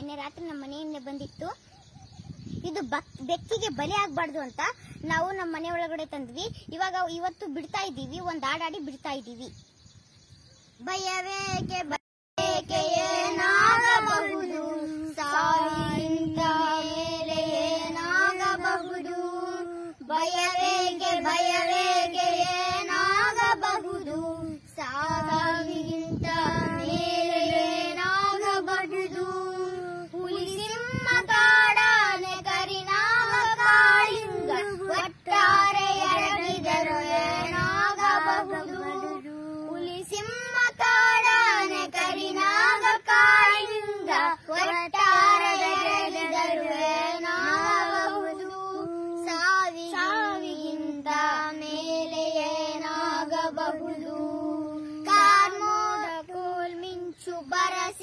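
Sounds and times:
child singing: 0:00.0 - 0:01.6, 0:10.8 - 0:58.0.

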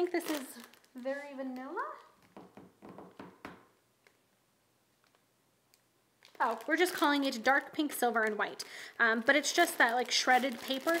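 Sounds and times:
plastic bag crinkling: 0:00.0 - 0:02.4, 0:06.2 - 0:11.0.

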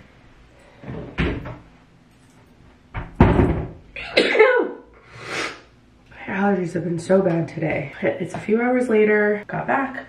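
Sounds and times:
woman sneezing: 0:04.0 - 0:05.6.

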